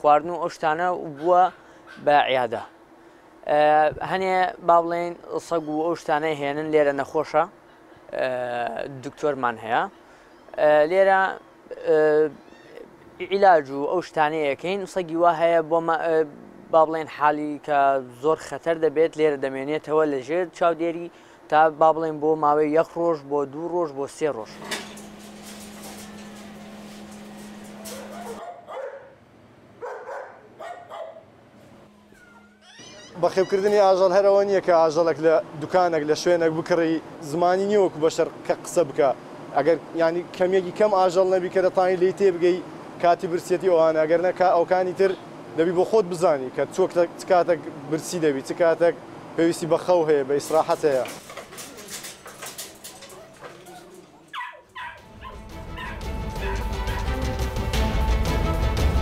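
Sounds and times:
high falling pet calls: 0:12.4 - 0:12.8, 0:32.0 - 0:33.7
puppies yipping and barking: 0:25.0 - 0:29.2, 0:29.8 - 0:31.3, 0:32.0 - 0:33.9, 0:51.1 - 0:57.1
music: 0:55.0 - 0:59.0.

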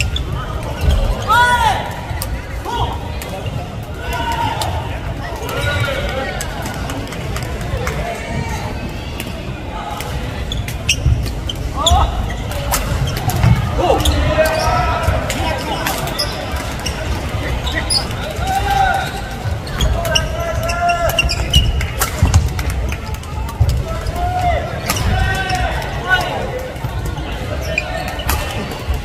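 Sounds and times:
echoing gymnasium hubbub: 0:00.0 - 0:29.0
shoes squeaking: 0:10.4 - 0:29.0.

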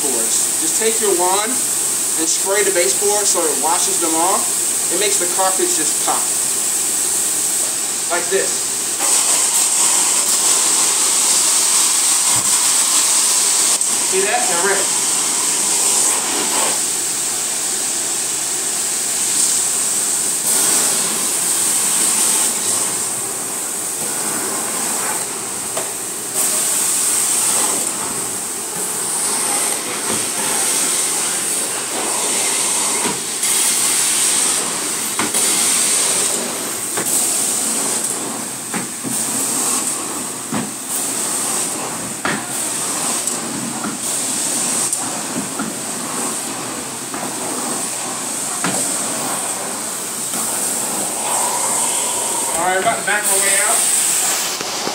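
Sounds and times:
vacuum suction hiss with whine: 0:00.0 - 0:54.9.

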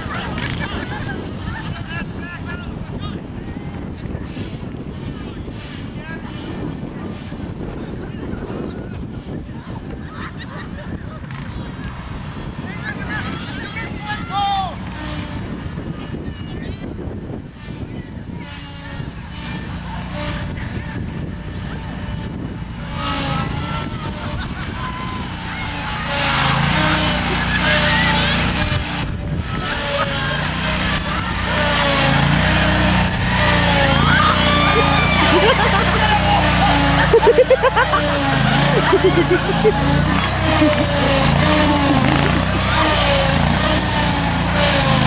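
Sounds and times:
people laughing: 0:00.0 - 0:02.2, 0:09.7 - 0:11.4, 0:23.8 - 0:28.8, 0:33.3 - 0:43.9
lawnmower engine running: 0:00.0 - 0:02.9, 0:11.2 - 0:16.5, 0:17.2 - 0:45.0
people talking: 0:00.0 - 0:16.8, 0:19.9 - 0:45.0.

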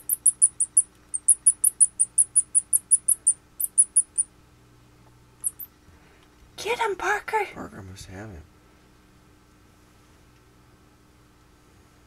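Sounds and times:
mouse squeaking: 0:00.0 - 0:04.3, 0:05.4 - 0:05.7.

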